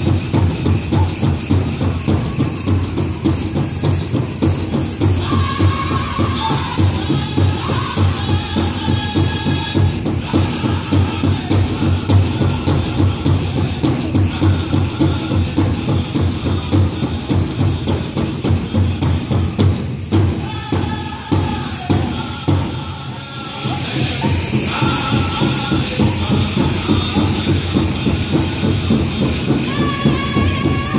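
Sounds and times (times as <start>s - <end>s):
metal jingle cones rattling: 0.0s - 20.2s
big drum beat: 0.0s - 30.9s
group singing: 4.7s - 30.9s.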